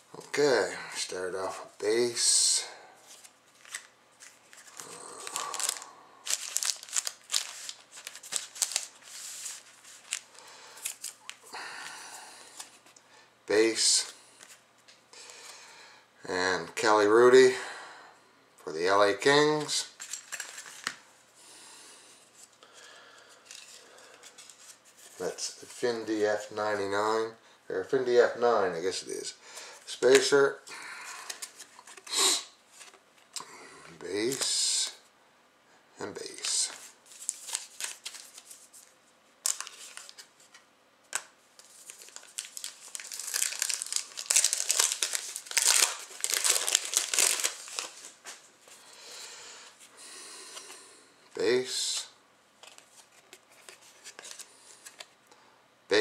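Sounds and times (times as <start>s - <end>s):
cards rustling against each other: 0.2s - 11.5s, 12.1s - 13.0s, 19.6s - 21.0s, 23.4s - 26.9s, 29.8s - 30.4s, 31.0s - 33.3s, 36.2s - 49.0s, 51.5s - 55.2s
foil wrapper tearing and crinkling: 3.6s - 11.5s, 39.4s - 40.2s, 41.6s - 48.2s.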